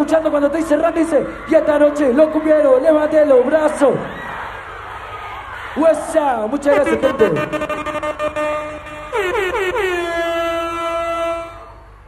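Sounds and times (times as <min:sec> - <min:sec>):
horn blasts sliding down in pitch: 0:06.7 - 0:11.8.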